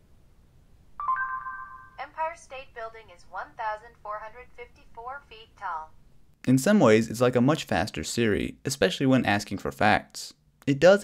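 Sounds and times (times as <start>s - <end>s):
electronic two-note chime: 1.0s - 2.0s.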